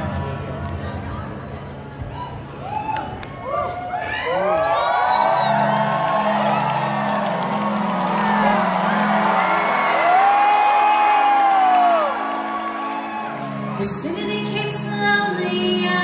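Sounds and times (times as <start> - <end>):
audience whooping and cheering: 2.0 - 14.1
pulsing keyboard chords: 5.1 - 16.0.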